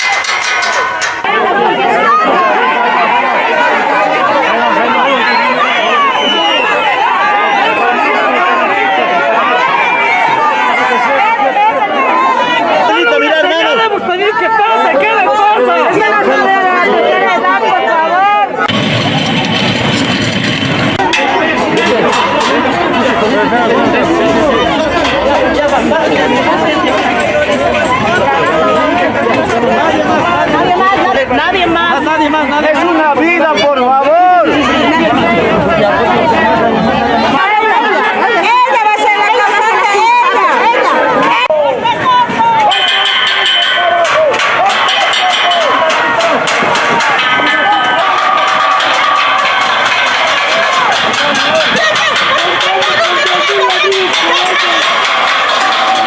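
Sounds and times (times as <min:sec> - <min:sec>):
sharp knocks or cracks: 0:00.0 - 0:01.3, 0:18.7 - 0:23.2
crowd shouting: 0:00.0 - 0:56.0.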